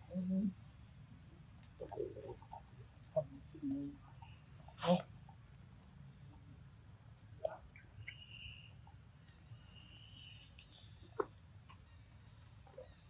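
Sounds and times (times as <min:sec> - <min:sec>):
high insect drone: 0:00.0 - 0:13.0.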